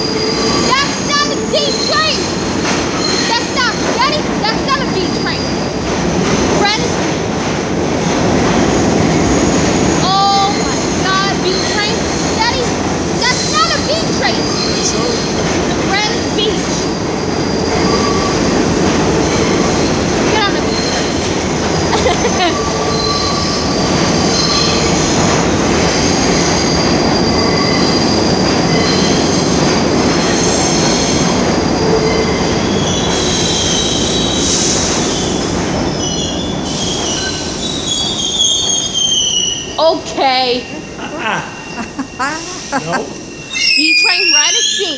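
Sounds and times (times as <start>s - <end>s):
subway train rumble: 0.0s - 44.9s
high-pitched wheel squeal: 13.2s - 18.5s, 19.4s - 21.2s, 36.0s - 44.9s.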